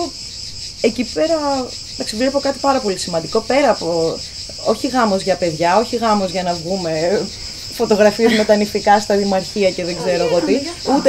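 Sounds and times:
insects chirring: 0.0s - 11.0s
woman talking: 0.8s - 11.0s.

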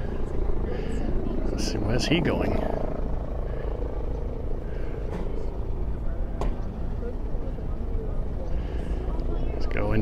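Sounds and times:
low wind rumble: 0.0s - 10.0s.

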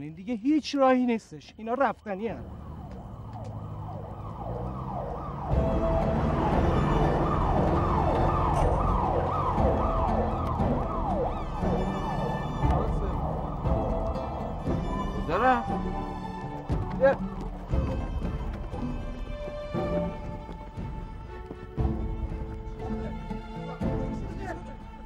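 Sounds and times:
ambulance siren: 1.9s - 25.0s.

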